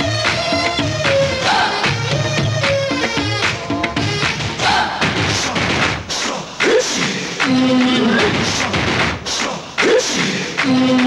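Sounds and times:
folk drum beats: 0.0s - 11.0s.

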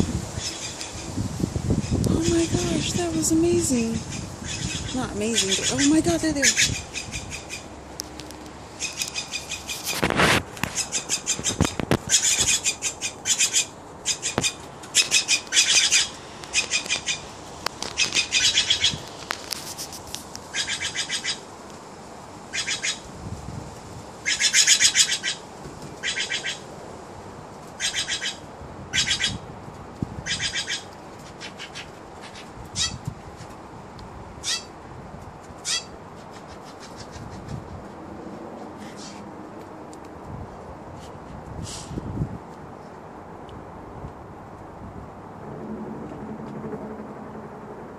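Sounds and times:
jays harsh calls: 4.0s - 7.8s, 8.7s - 19.0s, 20.5s - 21.4s, 22.5s - 23.1s, 24.2s - 25.4s, 26.0s - 26.7s, 27.8s - 29.4s, 30.2s - 33.0s, 34.4s - 34.7s, 35.6s - 37.5s.

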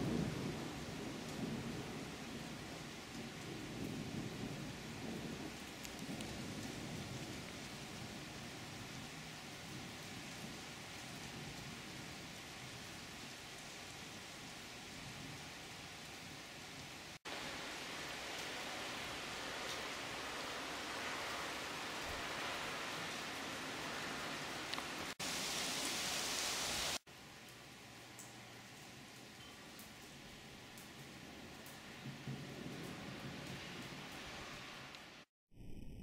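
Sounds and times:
steady rain hiss: 0.0s - 35.3s.

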